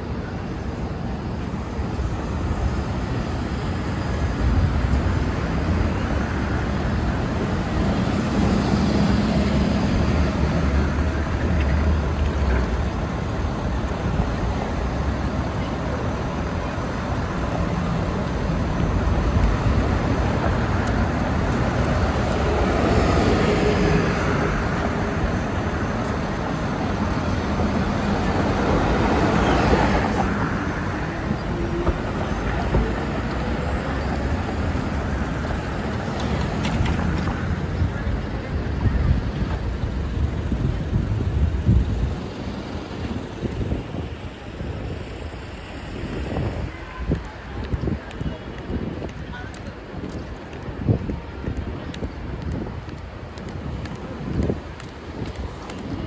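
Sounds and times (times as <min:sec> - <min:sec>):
street traffic driving past: 0:00.0 - 0:56.0.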